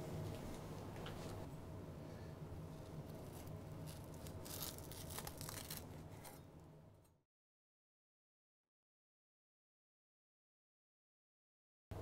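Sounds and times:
low steady hum: 0:00.0 - 0:07.2.

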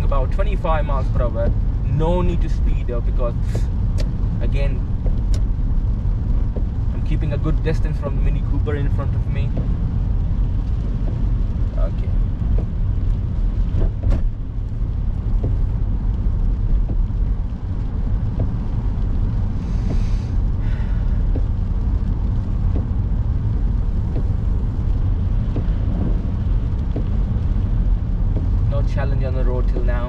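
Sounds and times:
car road and engine rumble: 0:00.0 - 0:30.0
brief hiss: 0:19.6 - 0:20.9.

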